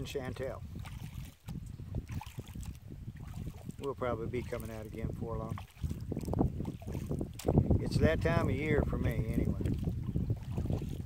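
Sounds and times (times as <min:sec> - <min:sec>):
paddle splashing water: 0:00.0 - 0:11.0
wind buffeting microphone: 0:00.0 - 0:11.0.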